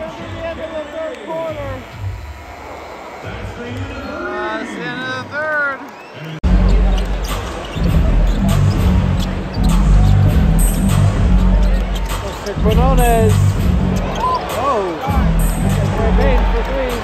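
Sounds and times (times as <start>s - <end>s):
arena music with heavy bass: 6.4s - 17.0s.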